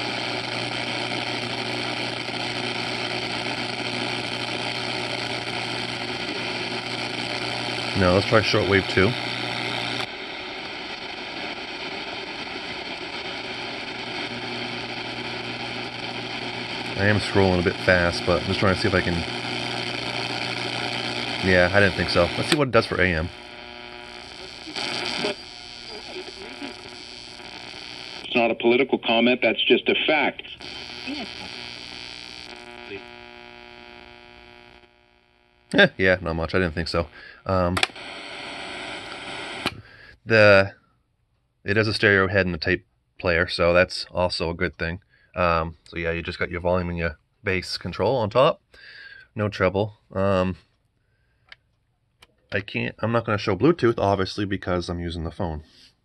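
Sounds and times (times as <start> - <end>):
radio static hiss: 0.0 - 40.7.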